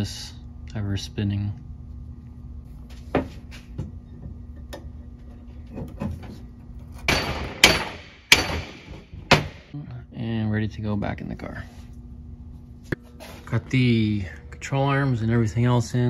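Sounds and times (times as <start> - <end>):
hand tool striking metal: 7.1 - 9.6.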